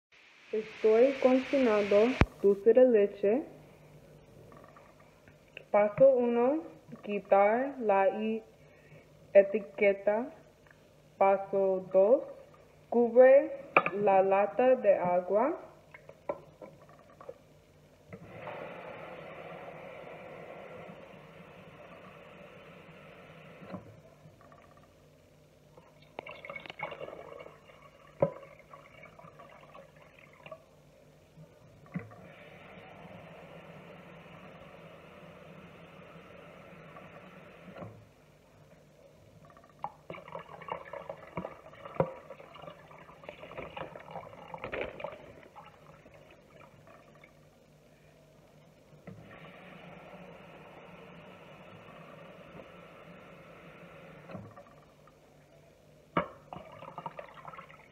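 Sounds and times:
water pouring into a pot: 26.0 - 30.7, 39.4 - 47.4, 56.5 - 57.9.

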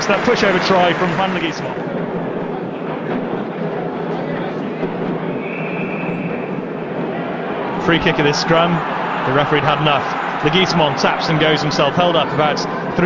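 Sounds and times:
stadium crowd hubbub: 0.0 - 13.0.

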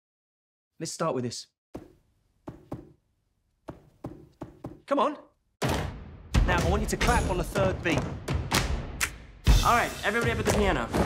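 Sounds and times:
feet stomping on floor: 1.8 - 3.0, 3.7 - 4.9.

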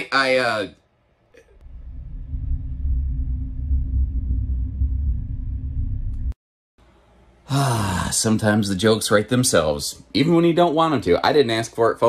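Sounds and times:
loud low rumble: 1.6 - 6.4.

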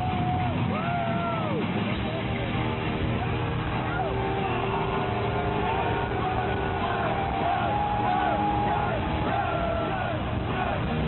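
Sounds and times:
crowd shouting and cheering: 0.0 - 11.0
muffled arena din: 0.0 - 11.0.

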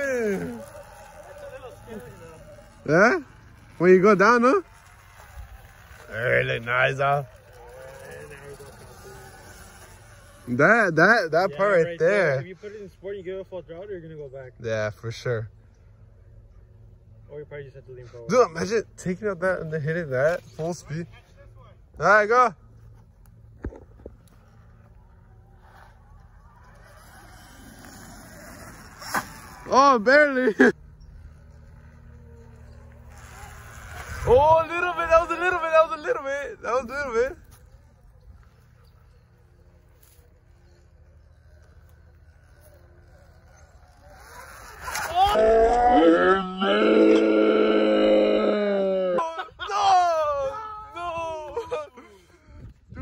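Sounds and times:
electric motor whining: 0.0 - 12.1, 23.6 - 48.5
tyre and wind noise: 33.0 - 38.1, 50.4 - 53.0.

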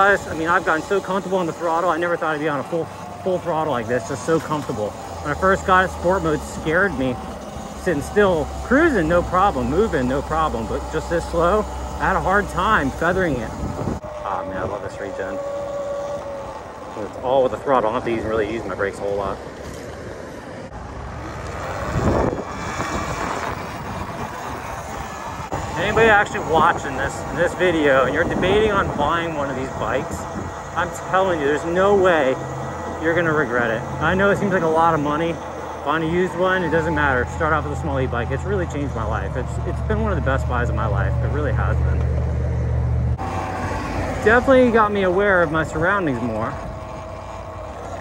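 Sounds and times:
road traffic: 0.0 - 48.0
vehicle passing: 0.0 - 48.0
wind rushing over microphone: 12.2 - 15.4, 16.0 - 33.1.

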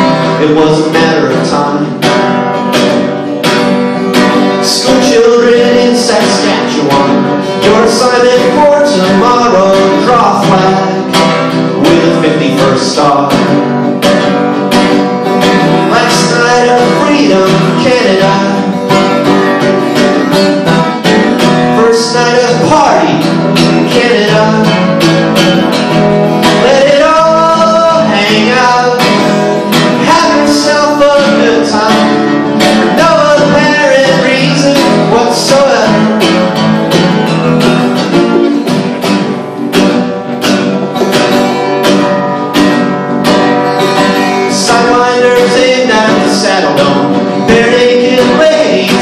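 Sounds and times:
man singing: 0.0 - 2.4, 4.2 - 14.0, 15.4 - 39.0, 43.8 - 49.0
acoustic guitar strumming: 0.0 - 49.0.

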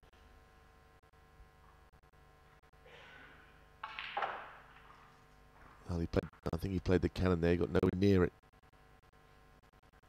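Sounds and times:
ball knocking: 3.8 - 5.8
cue striking ball: 3.8 - 5.8.

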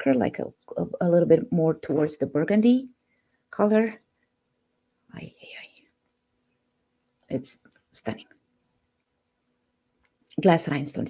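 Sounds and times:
person whispering: 5.1 - 5.9.

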